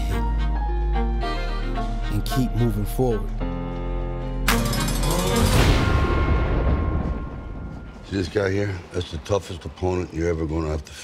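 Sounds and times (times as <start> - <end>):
deep cinematic boom: 5.4 - 8.4.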